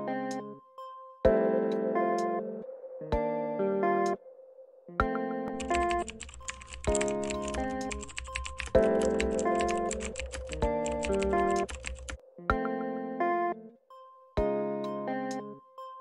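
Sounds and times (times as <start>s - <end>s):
background music of sustained chords: 0.0s - 16.0s
fast keyboard typing: 5.5s - 12.2s.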